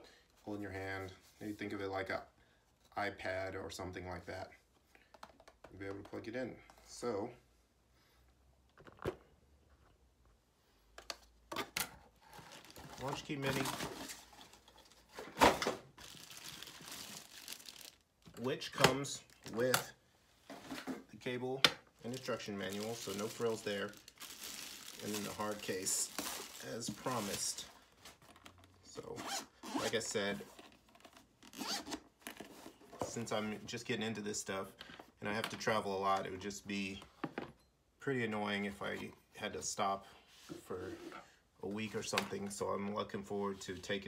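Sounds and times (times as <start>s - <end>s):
plastic packaging rustling: 12.2s - 18.5s, 22.0s - 28.7s
zipper being pulled: 29.2s - 30.0s, 31.5s - 32.0s.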